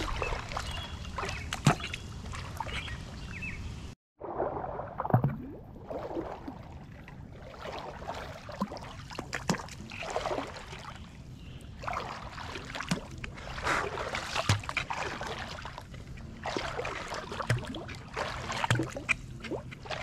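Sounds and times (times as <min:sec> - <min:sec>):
wading through water splashing: 0:00.0 - 0:03.6, 0:04.2 - 0:20.0.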